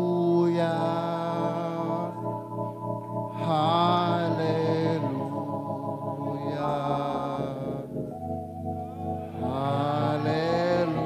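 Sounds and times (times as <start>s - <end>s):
man singing into a microphone: 0.0s - 2.3s, 3.3s - 7.9s, 9.3s - 11.0s.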